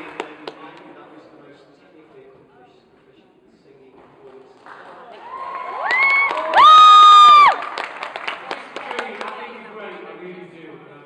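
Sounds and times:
audience cheering and clapping: 5.1 - 9.0
high-pitched whoops: 5.2 - 7.6.

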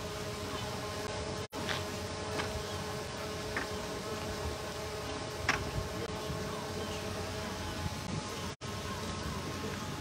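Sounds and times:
steady buzzing drone: 0.0 - 10.0.

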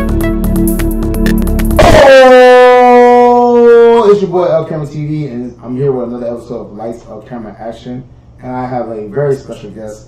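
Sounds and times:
man shouting: 1.8 - 4.3.

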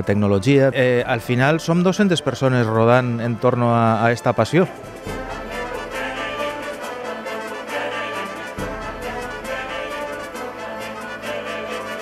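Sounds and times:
brass playing held chords: 1.0 - 12.0
orchestra playing slow chords: 4.6 - 12.0.

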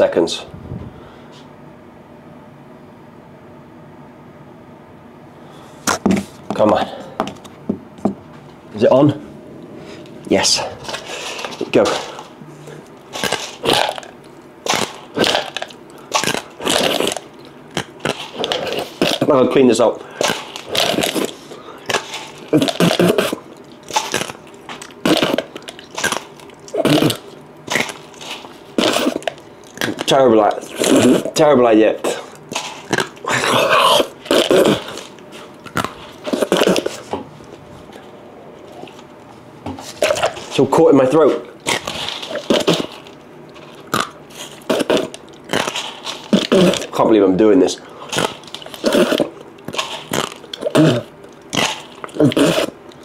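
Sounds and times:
faint hum: 0.0 - 53.0
dry pasta cracking between teeth: 13.0 - 19.3, 20.1 - 30.2.

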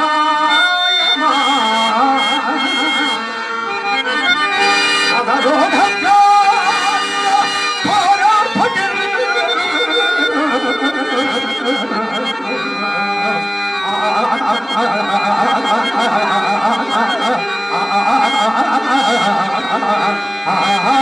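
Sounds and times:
man singing into a microphone: 0.0 - 4.3, 5.1 - 21.0
harmonium sustaining notes: 0.0 - 21.0.

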